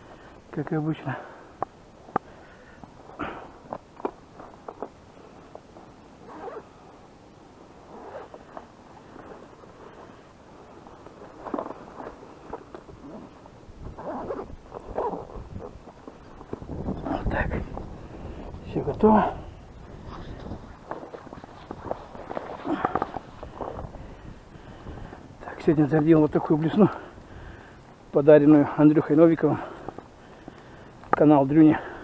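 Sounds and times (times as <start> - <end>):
rustling and knocking of gear: 1.5 - 6.7, 7.8 - 19.2, 19.8 - 25.3.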